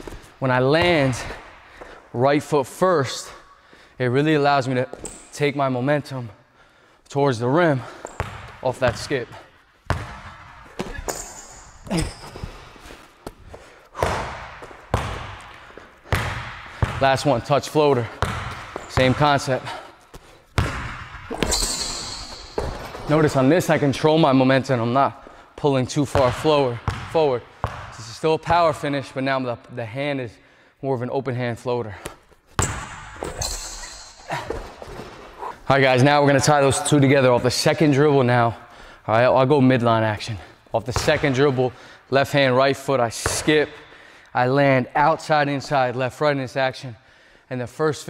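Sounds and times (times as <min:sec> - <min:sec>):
player footwork on court: 0:00.0 - 0:02.0, 0:07.8 - 0:23.8, 0:31.8 - 0:35.7
basketball bouncing on wooden floor: 0:07.8 - 0:13.4, 0:14.0 - 0:23.4, 0:26.1 - 0:28.0, 0:32.0 - 0:35.3.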